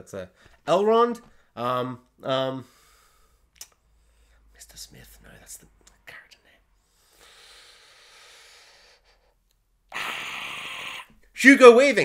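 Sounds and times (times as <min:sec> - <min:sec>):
man whispering and muttering: 0:04.5 - 0:06.7.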